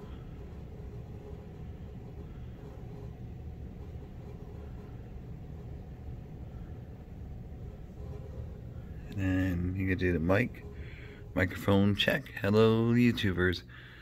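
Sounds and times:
room noise rumble and hiss: 0.0 - 14.0.

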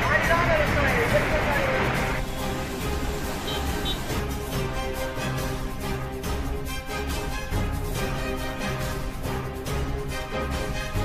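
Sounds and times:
heavy rain: 0.0 - 5.4.

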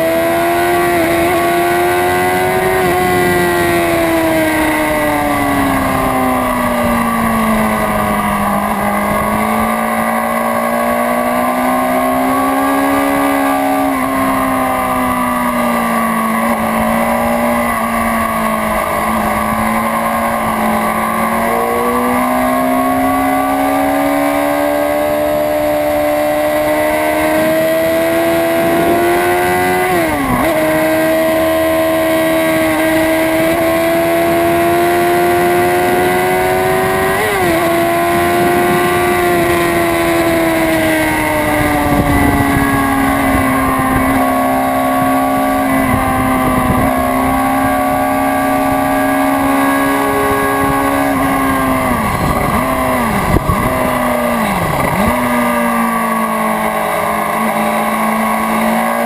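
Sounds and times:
motorcycle engine at high revs: 0.0 - 59.0.

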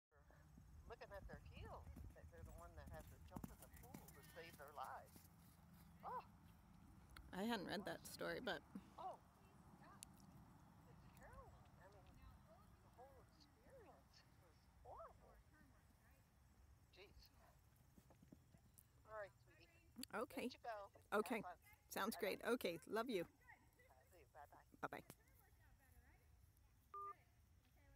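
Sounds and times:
horse hoofbeats on sand: 1.4 - 6.2.

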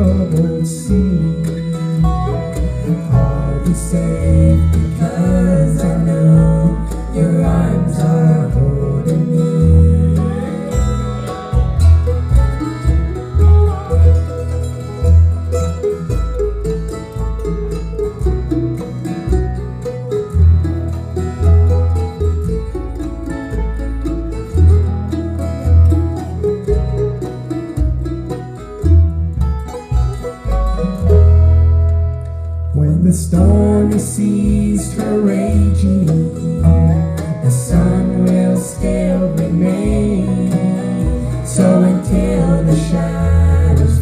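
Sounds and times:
banjo lead: 0.0 - 44.0
bluegrass band playing: 0.0 - 44.0.

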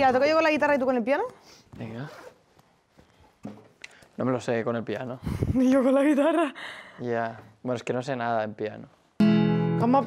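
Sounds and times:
jacket zip pulled: 1.9 - 2.5.

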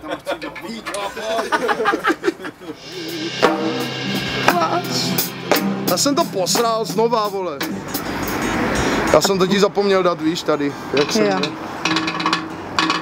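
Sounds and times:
voices: 0.0 - 11.7
drum kit with cymbals: 2.7 - 9.8
live band playing: 2.7 - 9.9.

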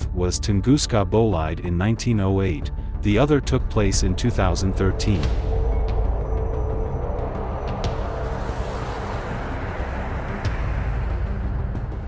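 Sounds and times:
car engine and road rumble: 4.2 - 12.0.

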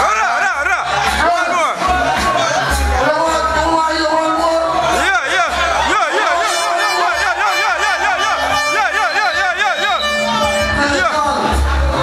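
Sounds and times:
bass-heavy backing track: 0.0 - 12.0.

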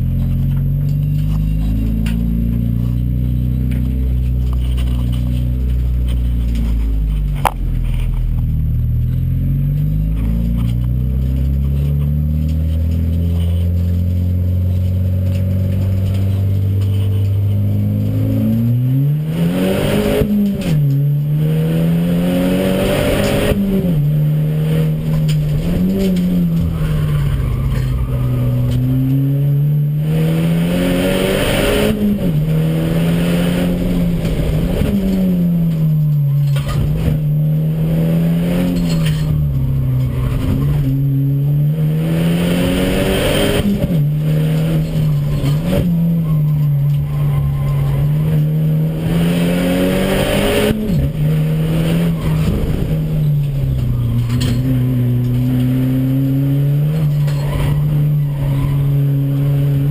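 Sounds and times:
race car engine from inside cabin: 0.0 - 59.9.

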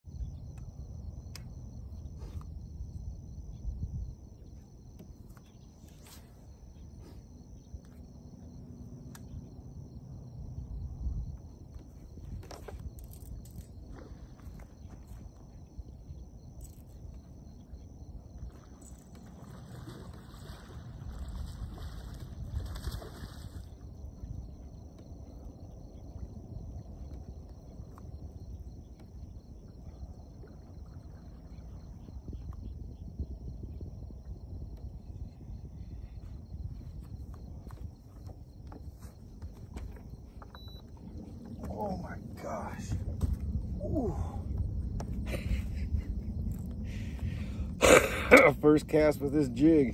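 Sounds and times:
steady low rumble: 0.1 - 18.9, 20.2 - 49.9.

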